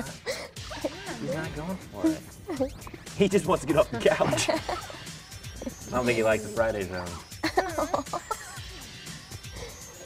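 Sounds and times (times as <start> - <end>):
people laughing: 0.0 - 2.8, 3.8 - 8.8.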